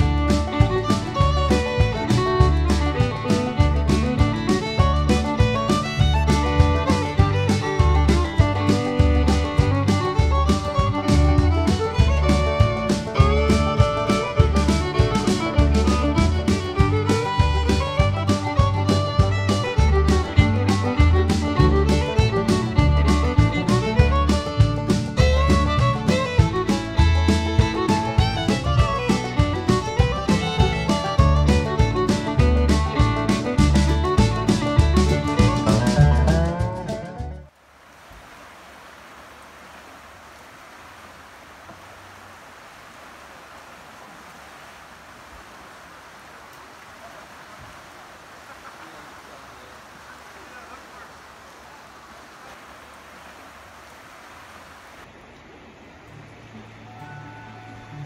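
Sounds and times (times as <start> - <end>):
creek rushing: 0.0 - 35.7, 37.5 - 57.5
fiddle-led music: 0.0 - 37.5, 56.8 - 58.0.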